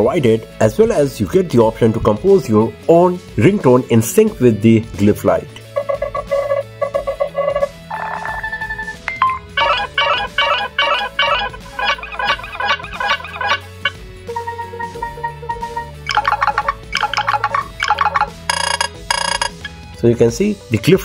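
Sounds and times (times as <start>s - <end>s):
electronic ringtone melody: 5.7s - 19.7s.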